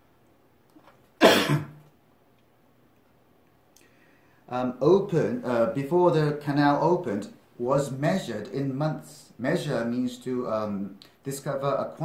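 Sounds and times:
person coughing: 1.2s - 1.8s.

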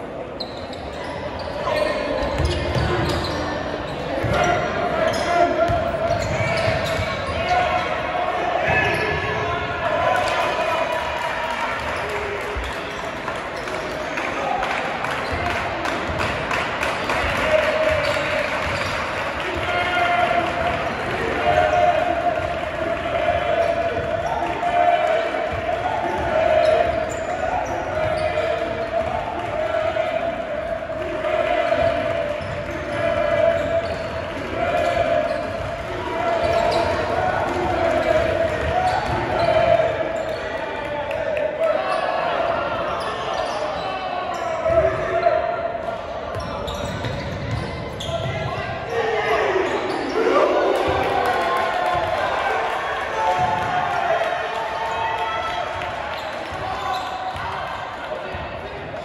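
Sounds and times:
voices of players and spectators: 0.0s - 59.0s.

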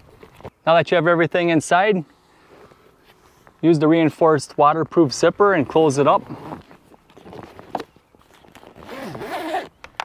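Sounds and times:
zipper rasping shut: 6.2s - 9.8s
zipper click: 8.4s - 9.8s.

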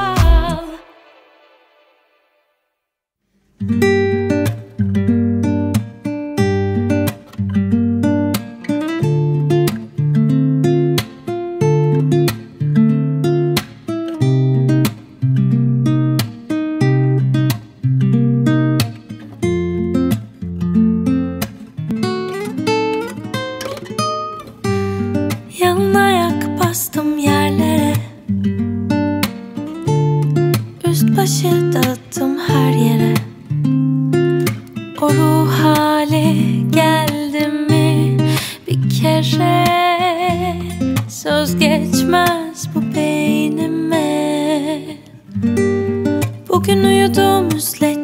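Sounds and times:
acoustic guitar strumming chords: 0.0s - 2.2s, 3.6s - 48.0s.

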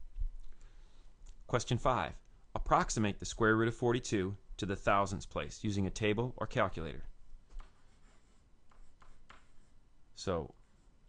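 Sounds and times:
stylus scratching on tablet: 7.5s - 9.9s, 10.6s - 11.0s.

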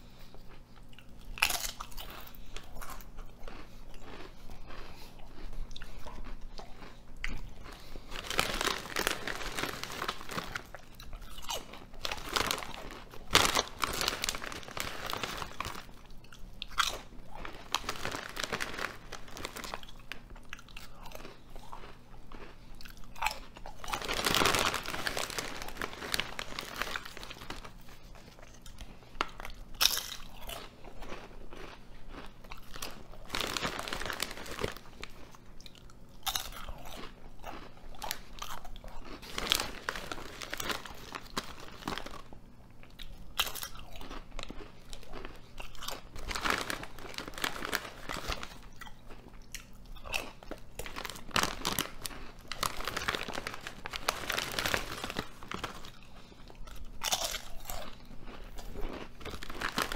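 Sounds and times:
potato chips crunching: 0.0s - 59.9s.

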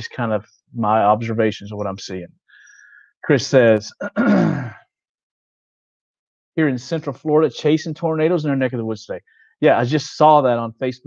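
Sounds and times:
man clearing his throat: 4.0s - 4.9s.

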